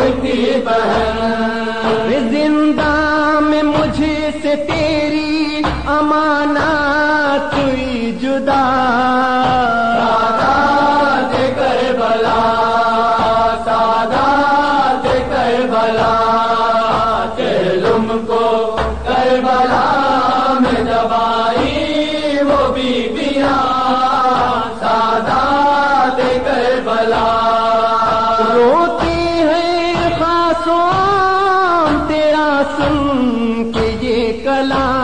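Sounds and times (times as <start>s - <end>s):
faint regular beat: 0.0s - 35.0s
lament chanted through loudspeaker: 0.0s - 35.0s.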